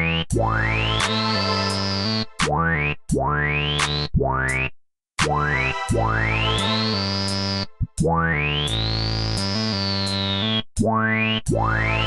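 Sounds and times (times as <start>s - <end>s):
low bass: 0.0s - 12.0s
synthesizer notes with pitch sweep: 0.0s - 12.0s.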